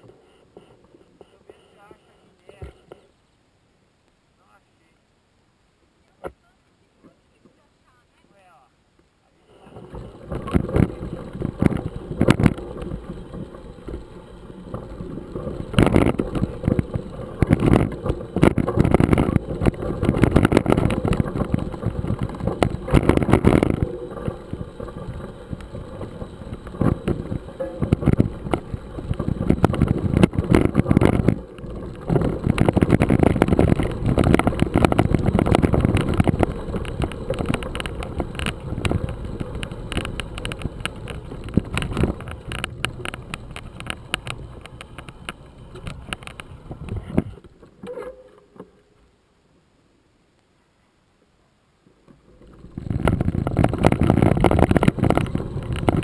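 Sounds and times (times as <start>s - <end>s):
camera rattling: 9.5s - 48.8s, 52.2s - 56.0s
bike tyres crunching on gravel: 9.6s - 47.4s, 52.2s - 56.0s.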